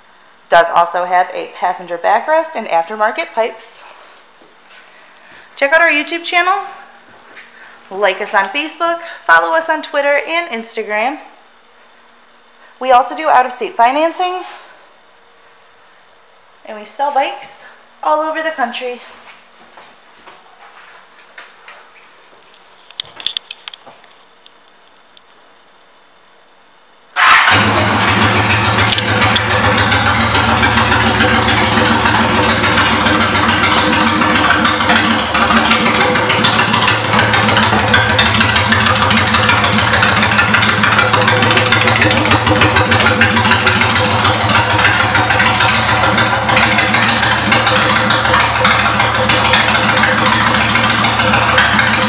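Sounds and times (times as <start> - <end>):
motorcycle engine starting and idling: 27.2 - 52.0.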